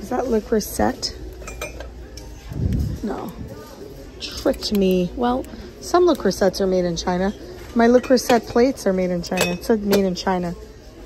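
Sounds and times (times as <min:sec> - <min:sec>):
ceramic dishes clinking: 0:01.4 - 0:02.2, 0:09.3 - 0:10.0.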